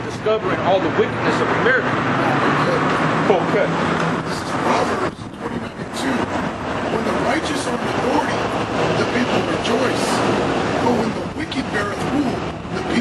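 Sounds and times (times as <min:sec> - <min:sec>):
low voices talking: 0:00.0 - 0:13.0
vehicle passing on street: 0:00.0 - 0:13.0.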